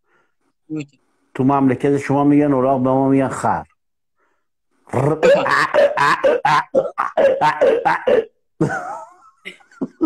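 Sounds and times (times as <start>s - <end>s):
man imitating donkey bray: 4.9s - 8.4s.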